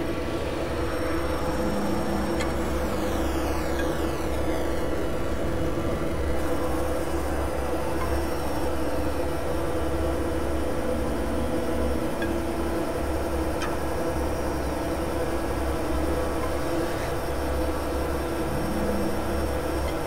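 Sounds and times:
noisy industrial synthesizer drone: 0.0 - 20.0.

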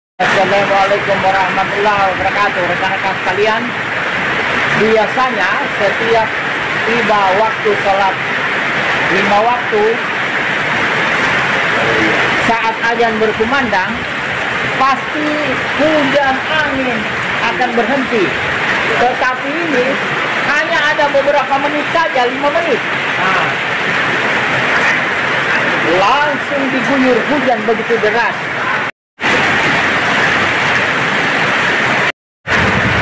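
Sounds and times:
heavy rain pouring: 0.2 - 33.0.

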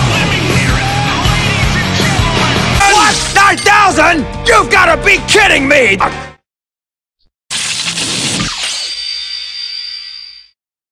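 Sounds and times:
high ringing tone: 8.7 - 10.6.

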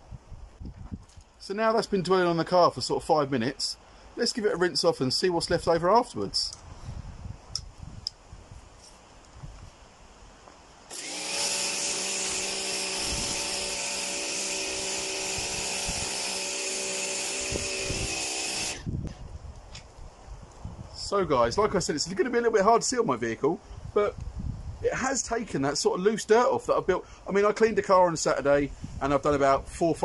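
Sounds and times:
pressure washer spraying: 10.9 - 18.8.

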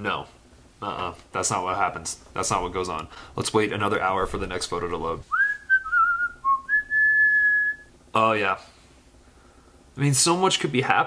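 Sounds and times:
man whistling: 5.3 - 7.9.

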